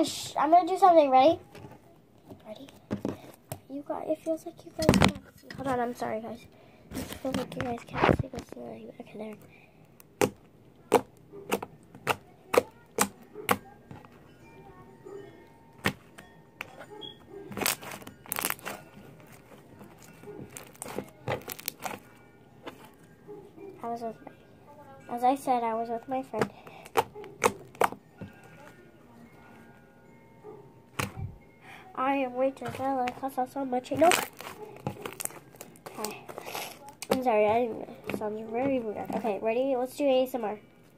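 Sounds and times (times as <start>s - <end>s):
person speaking: 7.0s - 9.4s, 31.0s - 40.5s
slime squelching: 15.8s - 23.0s, 26.3s - 28.8s, 32.6s - 39.4s
slime squishing crackles and pops: 17.5s - 18.9s, 20.5s - 22.0s, 33.9s - 37.3s.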